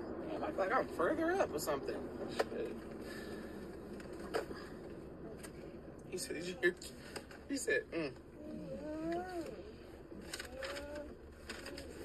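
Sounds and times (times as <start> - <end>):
dog whining: 8.4 - 9.8, 10.4 - 12.0.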